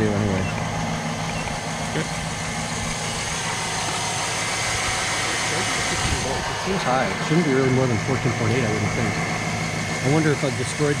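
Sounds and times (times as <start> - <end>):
alternator and belt drive turning: 0.0 - 11.0
vehicle engine running: 0.0 - 11.0.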